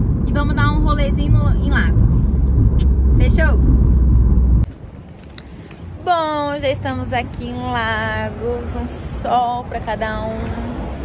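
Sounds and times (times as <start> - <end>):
low rumble inside car cabin: 0.0 - 5.0
outdoor background noise: 0.0 - 11.0.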